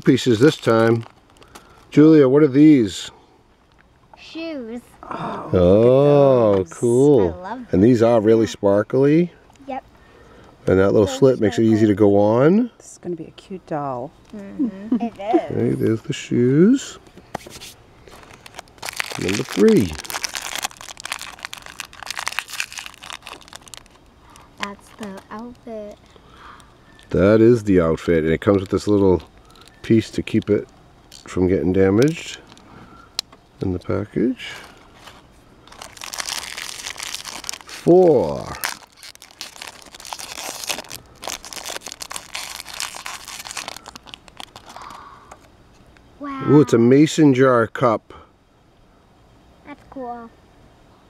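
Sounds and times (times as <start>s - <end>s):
foil wrapper crinkling: 0.0s - 2.0s, 17.5s - 27.3s, 28.3s - 31.5s, 34.4s - 45.0s.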